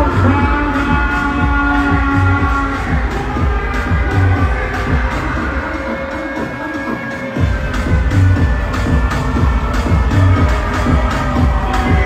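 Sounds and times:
heavy repeating bass beat: 0.0 - 12.0
live concert music: 0.0 - 12.0.

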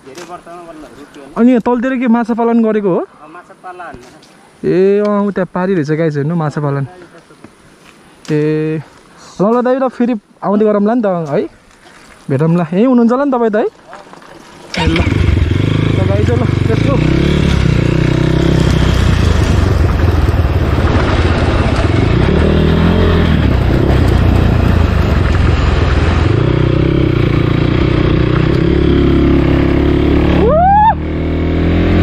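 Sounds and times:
motorcycle engine running: 14.8 - 32.0.

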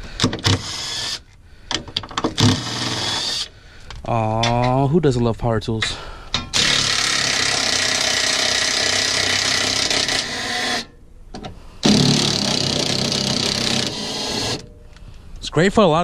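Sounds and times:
impact wrench hammering: 6.3 - 10.9, 11.8 - 14.7.

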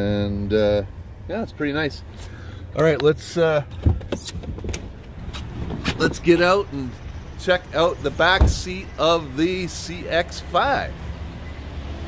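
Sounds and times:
car door clicks and knocks: 3.7 - 6.2, 8.4 - 8.7.

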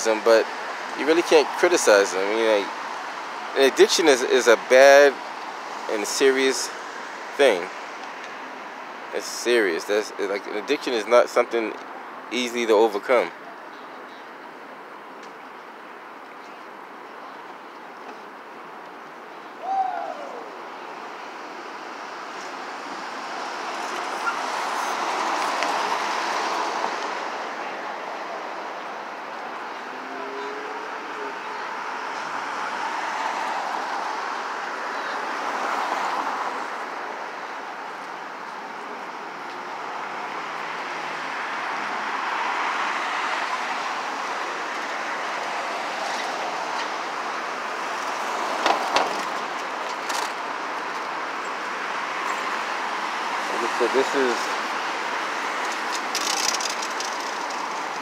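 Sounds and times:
vehicles driving past: 0.0 - 58.0.

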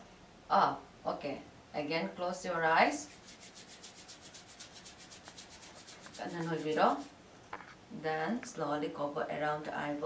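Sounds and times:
hands rubbing together: 3.0 - 7.2.

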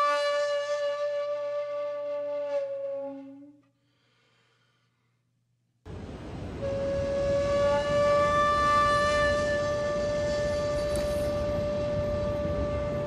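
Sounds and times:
city background noise: 5.9 - 13.0.

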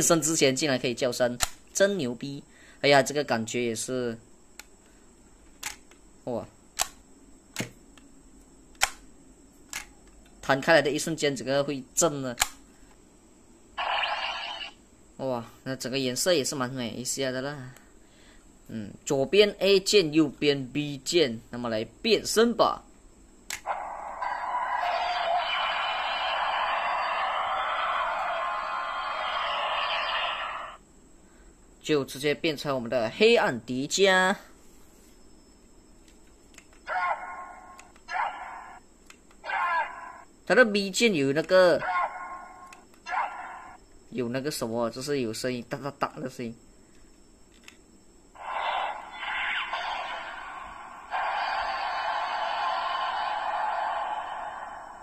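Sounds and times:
click: 6.8 - 7.0, 12.4 - 12.6, 39.0 - 39.4, 46.9 - 47.8
toy electronic sound effect: 13.8 - 14.8, 23.6 - 30.8, 48.4 - 53.4.

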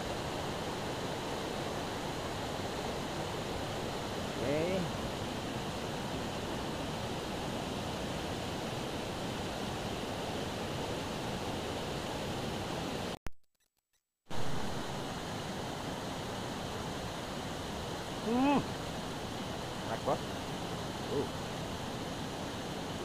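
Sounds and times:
river rapids rushing: 14.4 - 23.0.

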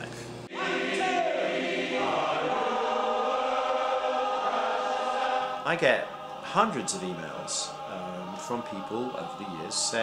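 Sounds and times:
men's chorus singing chords: 0.5 - 10.0.

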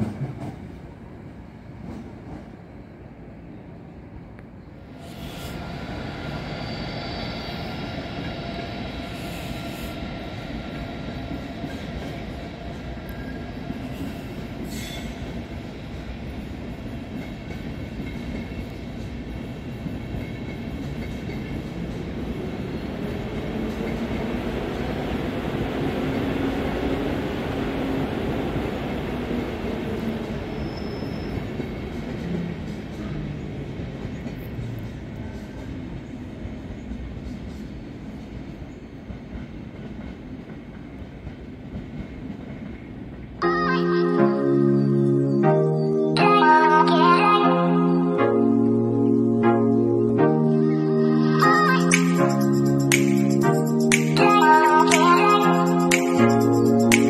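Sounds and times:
train wheels on rails: 0.0 - 3.3, 4.4 - 43.4
high wheel squeal: 5.0 - 10.4, 30.5 - 31.6.

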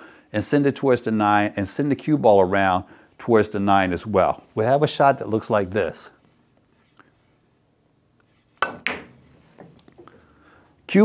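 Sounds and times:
cue striking cue ball: 8.6 - 9.4
cue ball cracking into ball: 8.6 - 9.7.

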